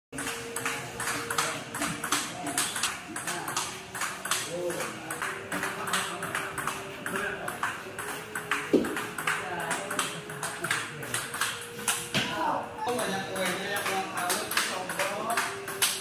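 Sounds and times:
ping pong ball clicking: 0.2s - 12.3s, 12.9s - 16.0s.

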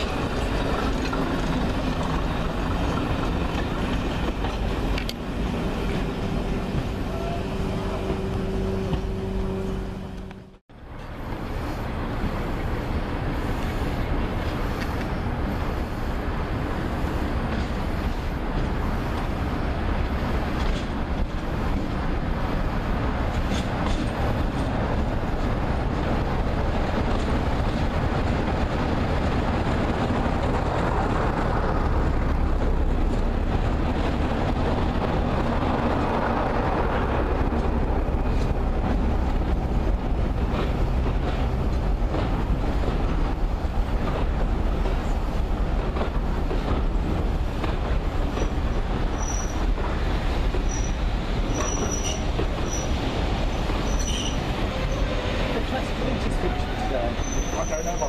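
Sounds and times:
train wheels clattering on rails: 0.0s - 7.1s, 16.8s - 58.0s
diesel locomotive engine under load: 0.0s - 58.0s
high wheel squeals: 49.1s - 49.6s, 50.6s - 55.4s, 56.3s - 58.0s.

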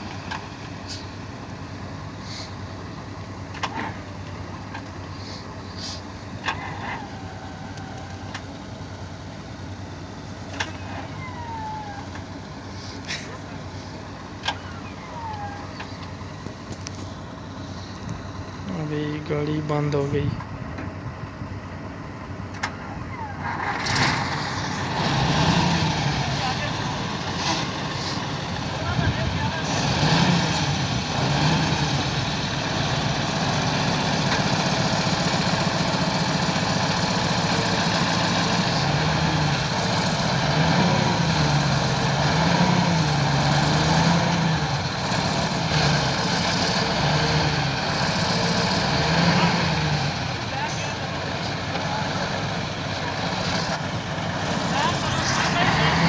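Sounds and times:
truck diesel engine revving: 0.0s - 56.0s.

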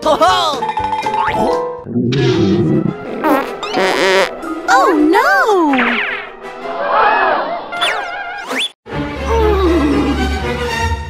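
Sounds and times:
light background music: 0.0s - 6.6s.

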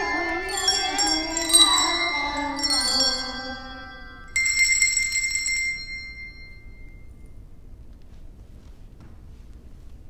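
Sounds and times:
children's handbells ringing: 0.0s - 7.1s.

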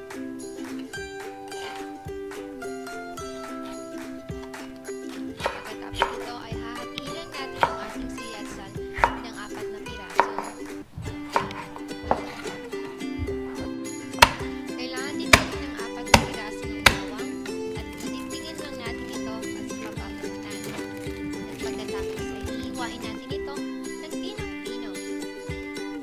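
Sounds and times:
background music: 0.0s - 26.0s
knife chopping on wooden board: 5.4s - 14.6s, 15.3s - 23.2s.

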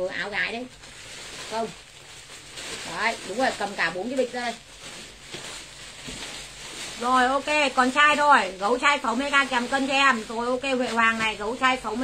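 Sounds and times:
clothes rustling: 0.6s - 12.0s.

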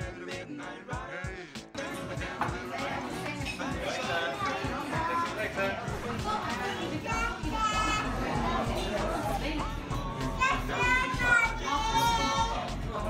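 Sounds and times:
background music: 0.0s - 13.0s
children chattering and squealing: 2.6s - 12.9s.

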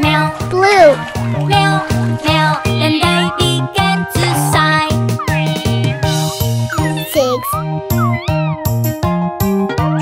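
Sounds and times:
bouncy children's song music: 0.0s - 10.0s
cartoon kitten meows: 5.2s - 8.6s.

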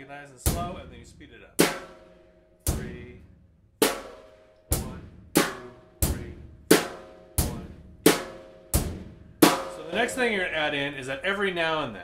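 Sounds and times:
slow rock drum beat: 0.4s - 10.7s.

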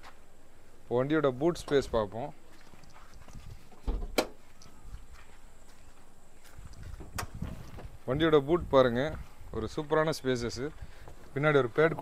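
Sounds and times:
dull thump: 3.7s - 4.4s.

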